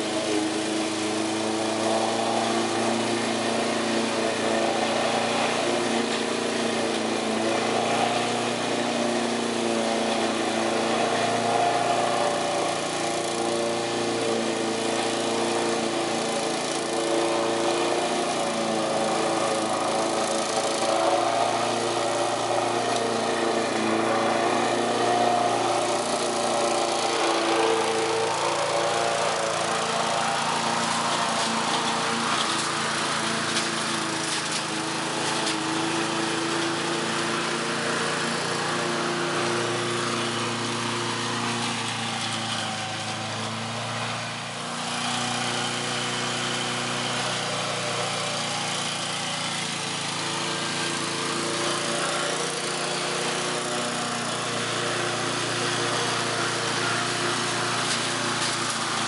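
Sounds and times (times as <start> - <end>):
lawn mower running: 0.0 - 59.0.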